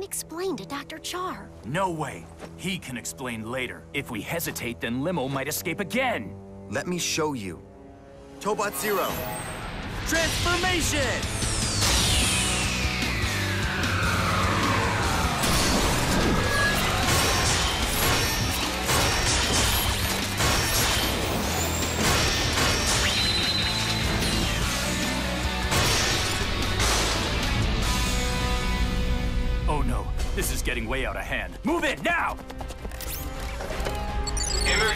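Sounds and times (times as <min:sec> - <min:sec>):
music: 0:00.0 - 0:34.9
long falling whine: 0:11.4 - 0:17.0
mechanical clanks and impacts: 0:17.0 - 0:23.4.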